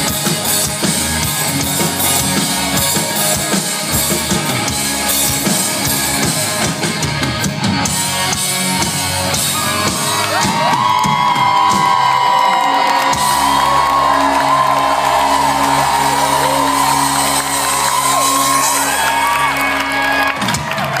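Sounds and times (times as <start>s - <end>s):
live rock band chord: 0.0s - 12.0s
crowd whooping and cheering: 8.2s - 21.0s.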